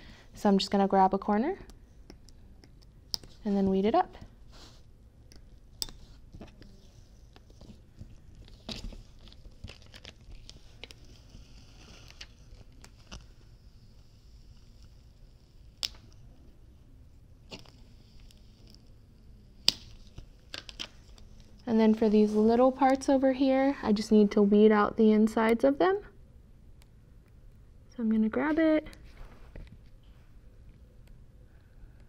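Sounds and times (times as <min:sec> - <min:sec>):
vinyl peeling with crackling rustle: 0:03.2 - 0:23.0.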